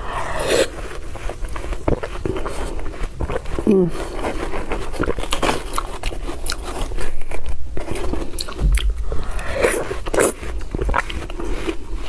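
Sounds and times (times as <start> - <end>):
wet chewing crunches: 0.0 - 12.0.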